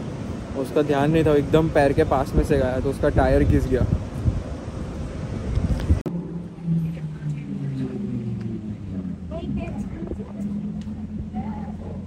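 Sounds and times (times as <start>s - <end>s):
car engine at low revs: 5.4s - 12.0s.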